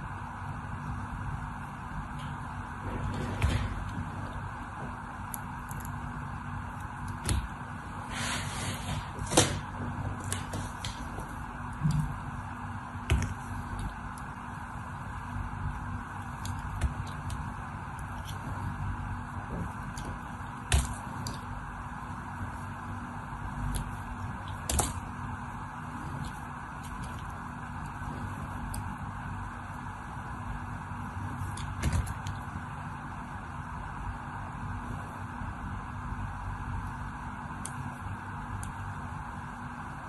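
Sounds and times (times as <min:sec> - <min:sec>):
low background hum: 0:00.0 - 0:40.0.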